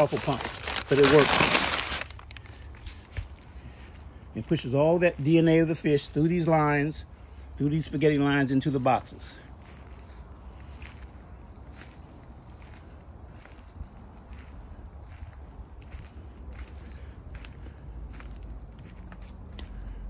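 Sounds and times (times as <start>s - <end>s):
footsteps crunching on mulch: 0.0s - 20.0s.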